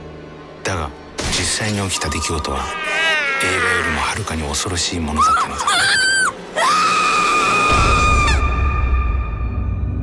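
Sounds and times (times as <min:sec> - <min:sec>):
woman screaming: 0:05.2 - 0:08.6.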